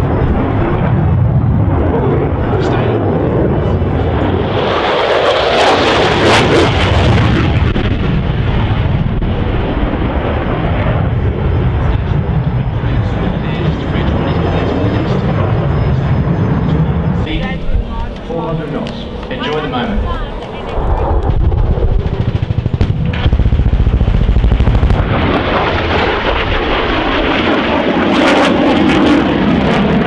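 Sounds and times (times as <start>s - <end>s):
jet engine roar: 0.0s - 30.0s.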